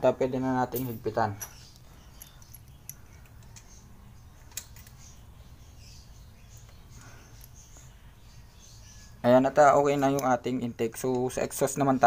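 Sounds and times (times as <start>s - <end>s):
metal clicks of hand tools: 4.5s - 5.1s, 9.9s - 10.4s.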